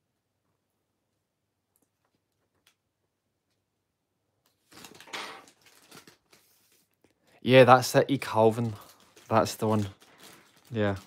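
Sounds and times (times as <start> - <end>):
paper rustling and crinkling: 4.5 - 11.0.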